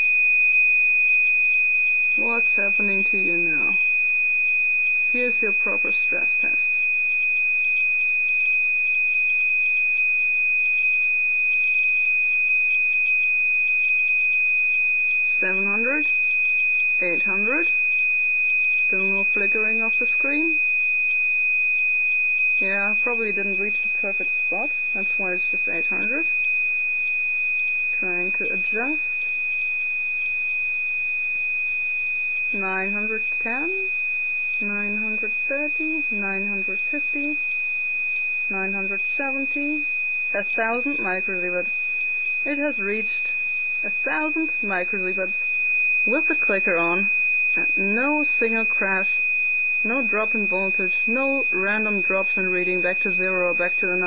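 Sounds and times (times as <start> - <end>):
geiger counter tone and crackle: 0.0 - 54.0
geiger counter high-pitched tone: 22.6 - 26.4.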